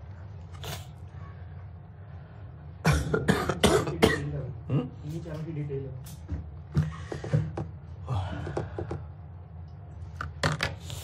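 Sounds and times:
person coughing: 2.8 - 5.0.

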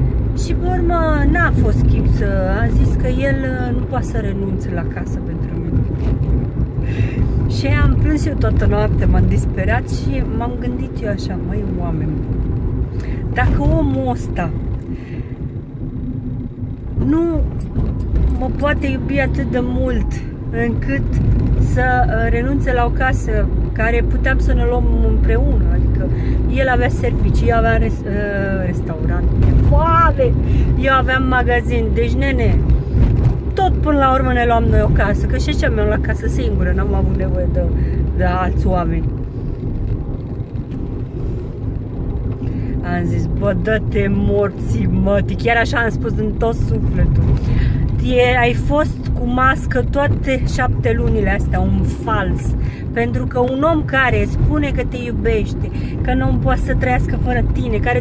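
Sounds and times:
car driving rumble inside cabin: 0.0 - 58.0.

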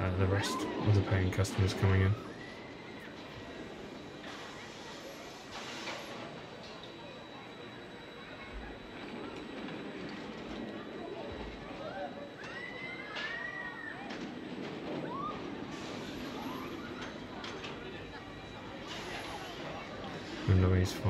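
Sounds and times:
distant voices: 0.0 - 21.0
roller coaster train rushing: 0.0 - 21.0.

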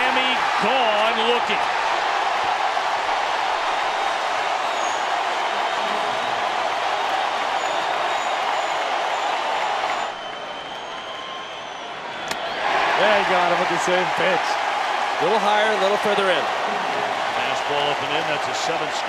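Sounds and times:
stadium crowd cheering and applauding: 0.0 - 19.0.

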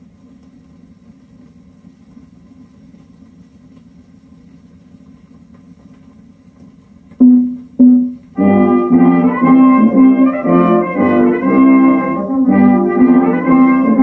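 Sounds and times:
record surface noise: 0.0 - 9.0
short loud music notes: 7.2 - 14.0.

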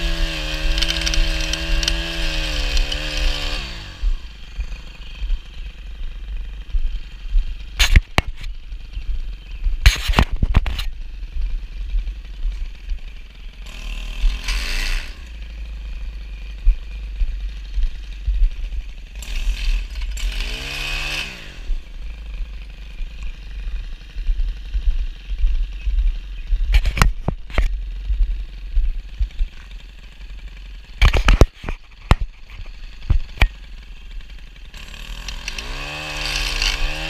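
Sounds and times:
stick edger engine revving: 0.0 - 37.0.

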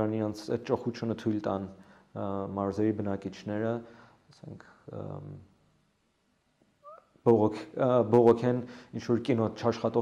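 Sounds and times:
man speaking: 0.0 - 5.5, 7.2 - 10.0.

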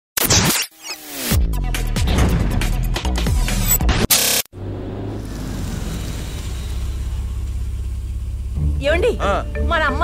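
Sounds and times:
car running: 4.6 - 10.0.

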